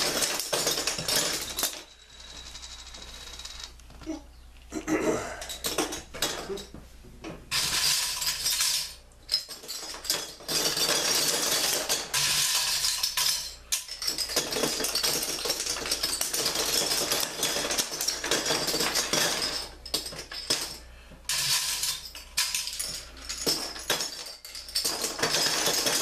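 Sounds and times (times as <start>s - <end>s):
metal bottle caps rattling: 7.5s - 26.0s.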